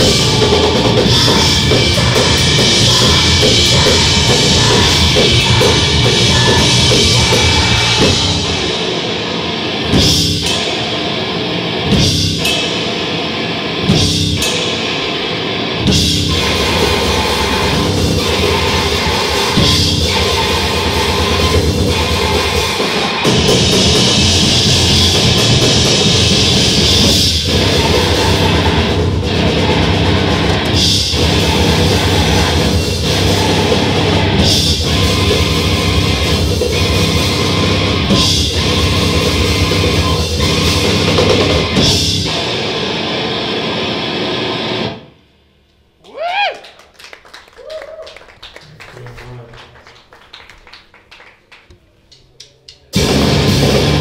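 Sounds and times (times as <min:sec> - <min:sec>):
drum kit: 0:00.0 - 0:45.0, 0:51.7 - 0:54.0
grindcore band playing live: 0:00.0 - 0:45.1, 0:52.9 - 0:54.0
loud distorted guitars: 0:00.0 - 0:45.5, 0:52.9 - 0:54.0.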